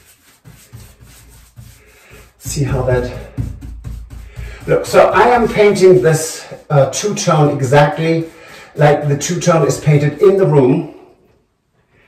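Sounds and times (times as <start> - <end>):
paintbrush brushing on wood: 0.0 - 10.4.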